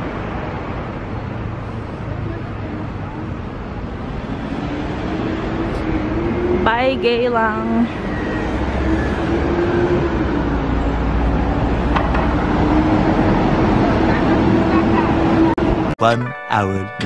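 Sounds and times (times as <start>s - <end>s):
vehicle engine droning: 0.0s - 16.0s
trucks passing rumble: 0.0s - 16.1s.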